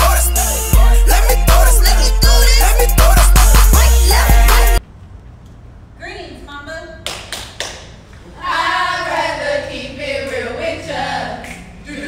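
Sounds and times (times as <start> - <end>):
women chanting in unison: 8.3 - 12.0.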